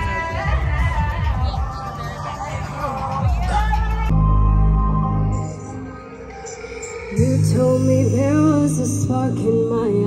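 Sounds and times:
backing track with bass notes: 0:00.0 - 0:10.0
woman singing into a microphone: 0:00.0 - 0:10.0.

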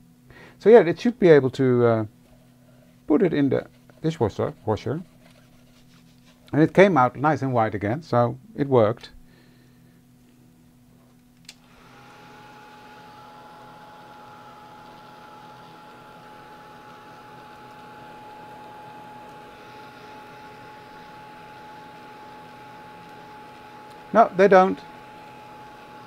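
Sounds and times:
heat tool fan whine: 0:00.0 - 0:26.0.

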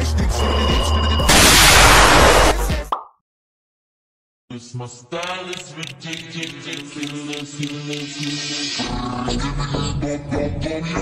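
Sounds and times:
laser blast sound effect: 0:01.3 - 0:02.5.

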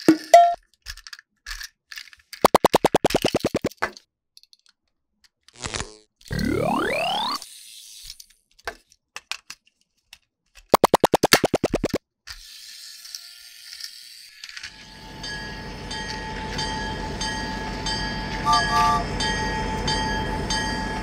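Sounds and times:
plastic toy parts clicking: 0:00.0 - 0:05.6, 0:08.0 - 0:12.5, 0:13.2 - 0:14.8
toy electric motor whirring: 0:05.4 - 0:08.4, 0:11.5 - 0:14.9.

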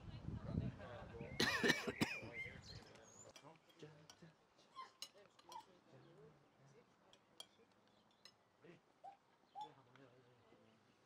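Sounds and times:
cutlery clinking on plates: 0:03.3 - 0:04.3, 0:04.9 - 0:05.8, 0:07.1 - 0:08.4.

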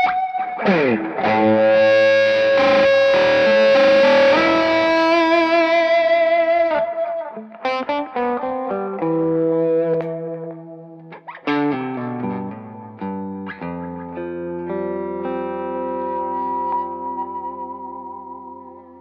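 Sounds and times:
overdriven electric guitar: 0:00.0 - 0:19.0.

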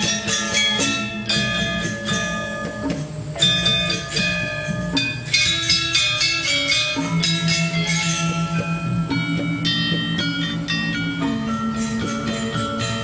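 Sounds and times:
gamelan ensemble playing: 0:00.0 - 0:13.0.

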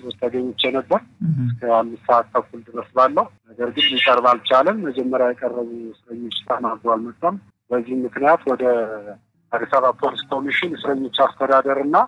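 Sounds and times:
person talking: 0:00.0 - 0:12.0.

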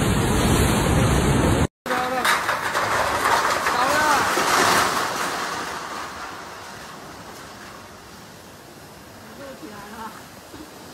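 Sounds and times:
gale wind gust: 0:00.0 - 0:01.7
driving rain: 0:00.0 - 0:10.9.

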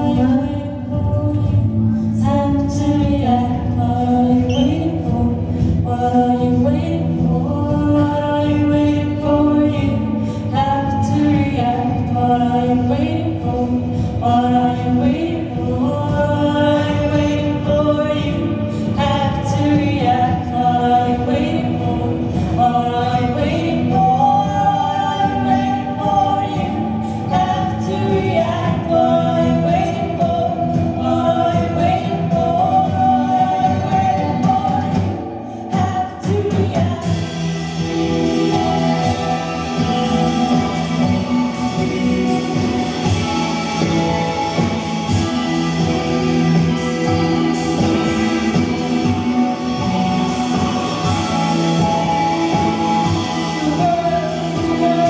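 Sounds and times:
live band music: 0:00.0 - 0:55.0
voices singing in harmony: 0:00.0 - 0:55.0.

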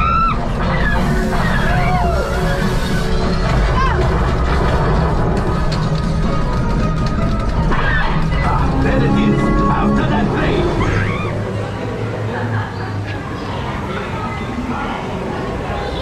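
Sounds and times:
deep rumble: 0:00.0 - 0:12.7
loud music: 0:00.1 - 0:11.6
sweeping effects: 0:07.2 - 0:13.1.

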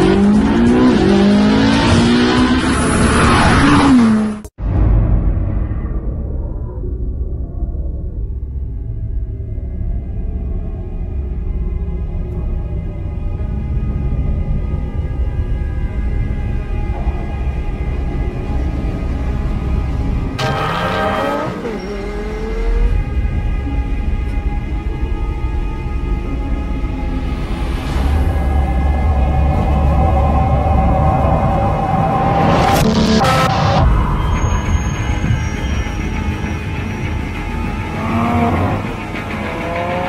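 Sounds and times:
car engine at high revs: 0:00.0 - 0:04.5.

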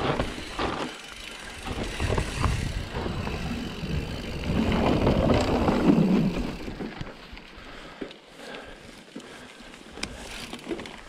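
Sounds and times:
bike rattling and knocking: 0:00.0 - 0:07.2
tyres on dirt: 0:00.0 - 0:11.0.

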